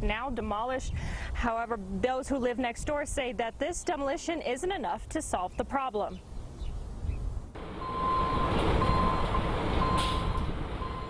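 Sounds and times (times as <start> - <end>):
diesel loader engine rumbling: 7.5 - 11.0.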